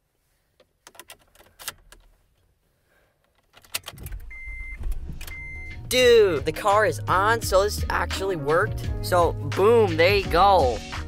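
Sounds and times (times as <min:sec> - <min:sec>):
car engine starting and idling: 0:03.5 - 0:08.0
short beeps: 0:04.3 - 0:05.8.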